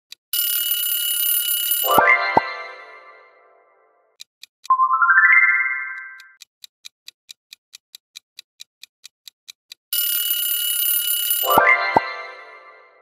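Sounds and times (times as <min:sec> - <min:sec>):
alarm clock bell ringing: 0:00.4 - 0:03.2, 0:10.0 - 0:13.0
clock ticking: 0:04.1 - 0:12.8
rising electronic chime: 0:04.7 - 0:06.2.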